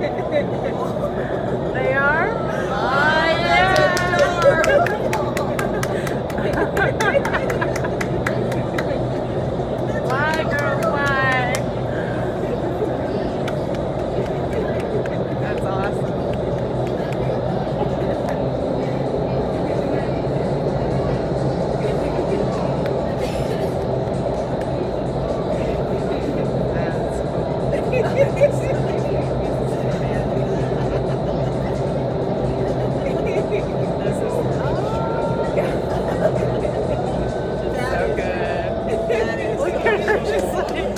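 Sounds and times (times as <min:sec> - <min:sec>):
wind tunnel fans rushing air: 0:00.0 - 0:40.9.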